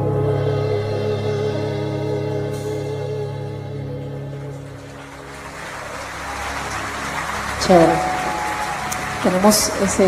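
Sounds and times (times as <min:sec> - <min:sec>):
live worship song: 0:00.0 - 0:10.0
audience applauding: 0:04.6 - 0:10.0.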